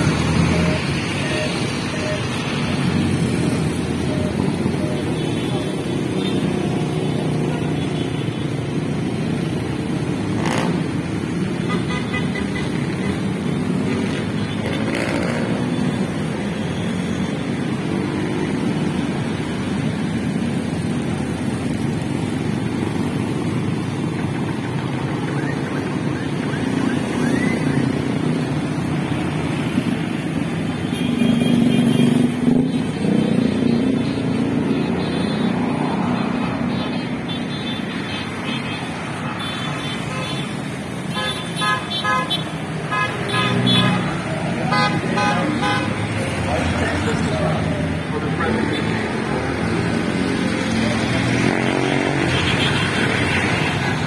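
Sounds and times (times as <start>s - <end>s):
motorcycles passing: 0.0s - 54.0s.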